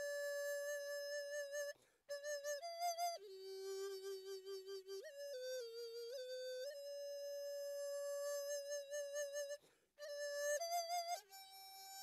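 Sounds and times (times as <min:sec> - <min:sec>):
held flute-like note: 0:00.0 - 0:12.0.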